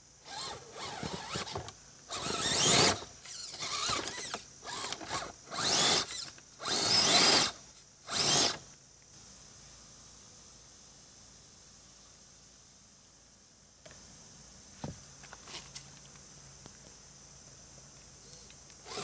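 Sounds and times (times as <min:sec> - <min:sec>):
toy car electric motor whining: 0:00.2 - 0:08.6.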